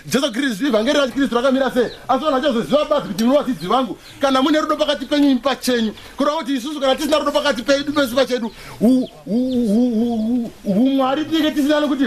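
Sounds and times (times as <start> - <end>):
man intoning wavering tones: 8.8 - 11.0.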